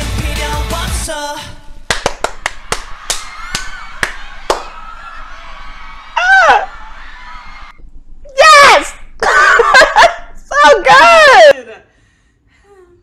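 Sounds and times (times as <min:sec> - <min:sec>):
woman clapping hands: 0:01.9 - 0:04.8
excited squeal: 0:03.0 - 0:07.8.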